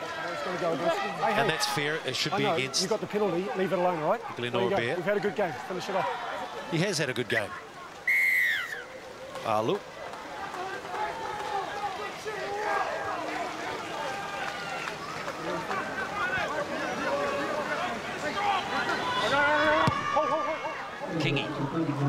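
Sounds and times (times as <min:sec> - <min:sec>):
crowd voices: 0:00.0 - 0:22.0
referee's whistle blast: 0:08.1 - 0:08.8.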